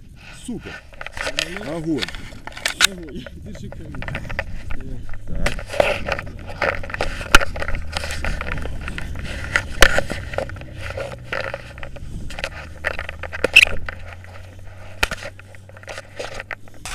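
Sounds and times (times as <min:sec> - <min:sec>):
gear rubbing against camera: 0:00.0 - 0:16.9
low steady rumble: 0:00.0 - 0:16.9.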